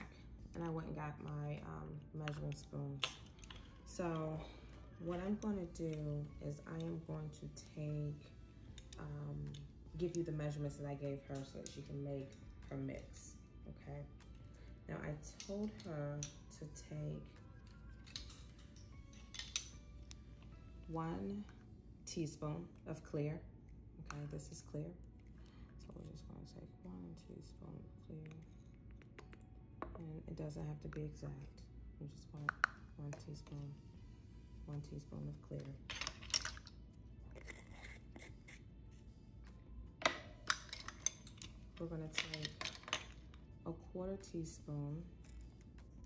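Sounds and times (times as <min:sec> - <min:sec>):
faint background music: 0:00.0 - 0:46.0
plastic measuring spoons clattering: 0:18.0 - 0:19.8, 0:35.9 - 0:36.7, 0:40.0 - 0:43.3.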